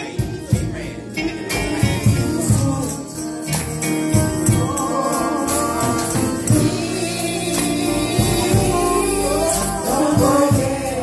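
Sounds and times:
gospel choir singing: 0:00.0 - 0:11.0
instrumental accompaniment: 0:00.0 - 0:11.0
percussion strikes: 0:00.0 - 0:11.0.

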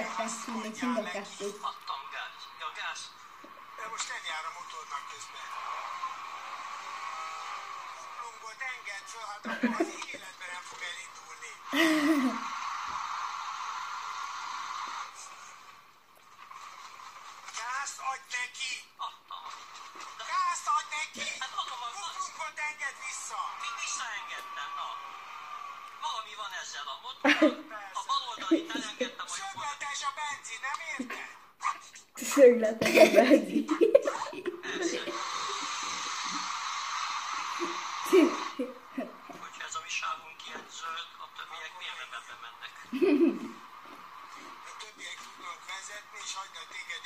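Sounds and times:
steady hiss: 0:00.0 - 0:26.6, 0:33.8 - 0:39.9.

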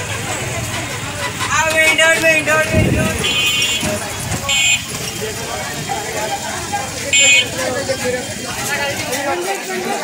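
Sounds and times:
street market chatter: 0:00.0 - 0:10.0
vehicle horn toots: 0:03.0 - 0:05.0, 0:07.1 - 0:07.8.

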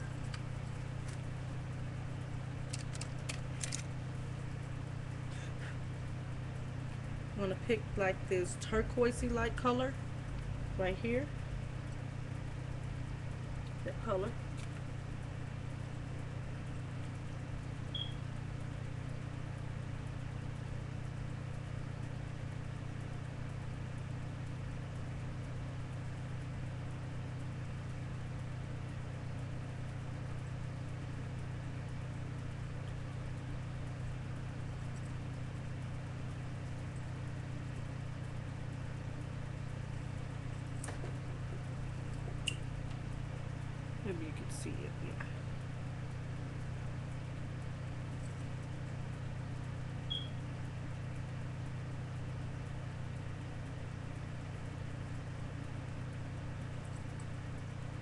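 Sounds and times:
low hum with faint hiss: 0:00.0 - 0:58.0.

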